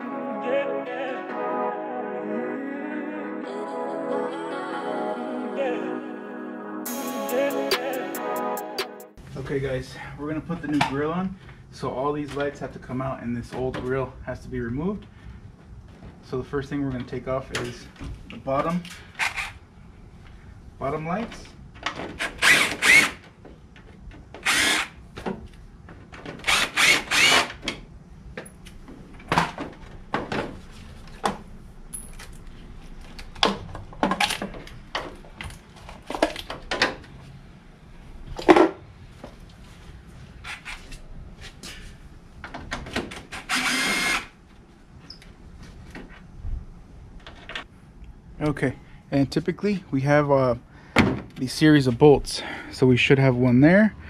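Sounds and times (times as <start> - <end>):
cordless drill spinning: 22.4 - 23.2, 24.4 - 25.0, 26.5 - 27.5, 43.3 - 44.3.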